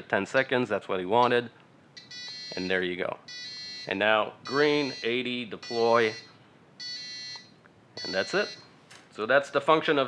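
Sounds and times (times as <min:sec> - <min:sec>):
electronic buzzer beep: 0:03.3 - 0:08.7.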